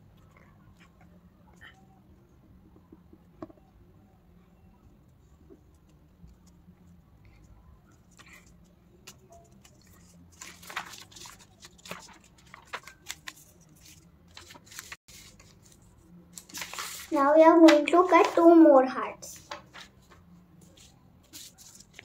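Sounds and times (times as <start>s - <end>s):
paper rustling on a desk: 8.1s - 18.6s, 19.4s - 22.0s.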